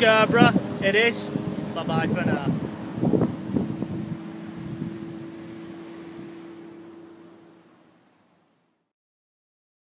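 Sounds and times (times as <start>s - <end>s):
low engine-like hum: 0.0s - 8.9s
noisy sea wash: 0.0s - 8.9s.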